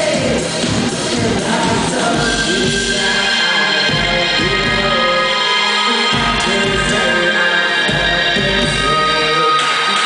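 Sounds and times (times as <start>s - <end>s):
live rock band with synths: 0.0s - 10.0s.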